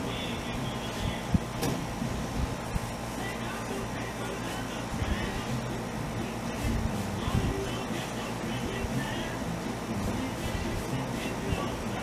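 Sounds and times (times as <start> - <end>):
air conditioner humming: 0.0 - 12.0.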